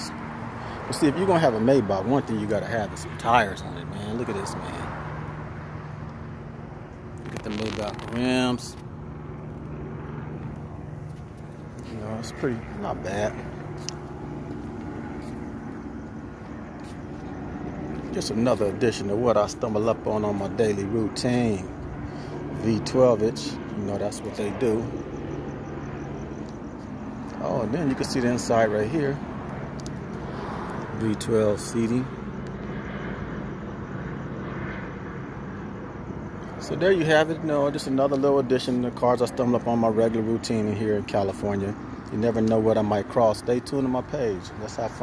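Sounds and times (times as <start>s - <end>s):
low mechanical hum: 0.0s - 38.9s.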